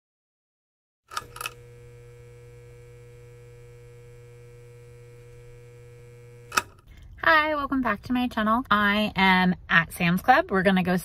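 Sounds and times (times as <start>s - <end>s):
electrical hum: 1.1s - 6.9s
sharp clicks: 6.4s - 6.8s.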